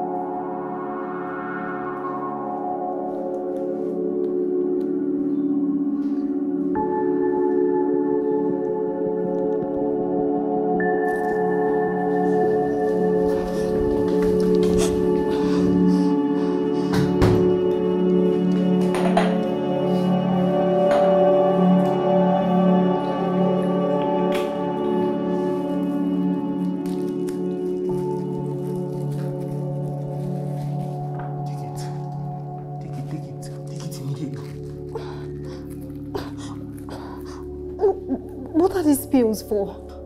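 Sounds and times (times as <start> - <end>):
sustained drone chord: 3.8 - 29.6
person whimpering: 34.9 - 38.5.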